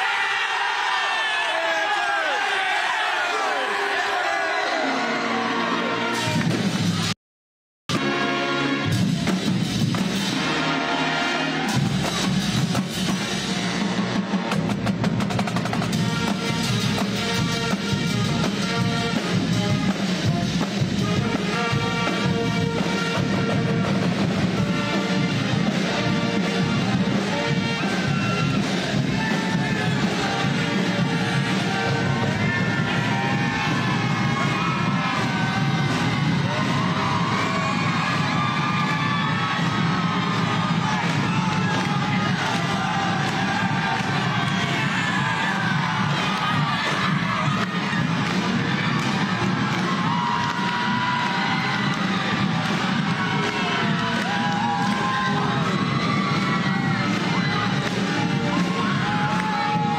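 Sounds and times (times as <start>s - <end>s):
crowd cheering and shouting: 0.0s - 7.2s, 7.9s - 59.9s
drumline: 4.9s - 7.1s, 7.9s - 59.9s
marching band playing: 7.9s - 59.9s.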